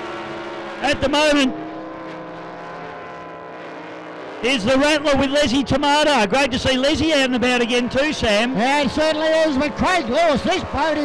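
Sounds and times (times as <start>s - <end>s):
distant powerboat engine drone: 0.0s - 11.0s.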